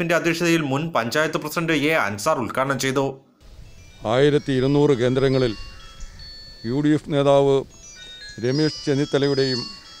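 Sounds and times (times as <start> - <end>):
high chime-like tones: 3.6 - 10.0
man speaking: 4.0 - 5.6, 6.7 - 7.7, 8.4 - 9.8.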